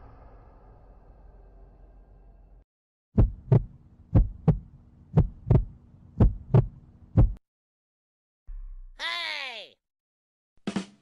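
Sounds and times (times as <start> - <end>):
heartbeat thumps: 3.2 - 7.4.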